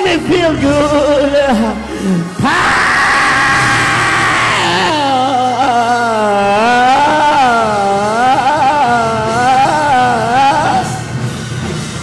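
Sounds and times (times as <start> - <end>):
preacher singing amplified: 0.0 - 2.7, 4.4 - 11.1
musical backing: 0.0 - 12.0.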